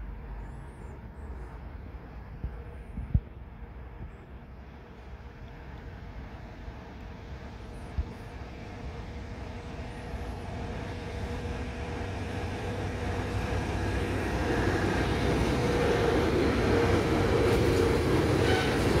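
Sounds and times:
diesel locomotive approaching: 0:00.0 - 0:19.0.

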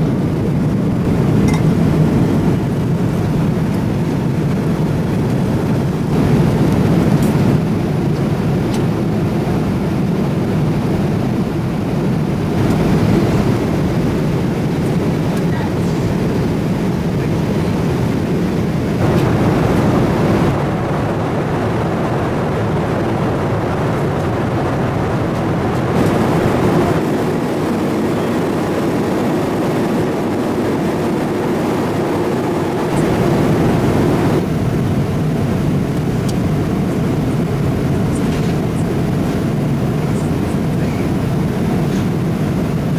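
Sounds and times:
airplane cabin roar: 0:00.0 - 0:42.9.

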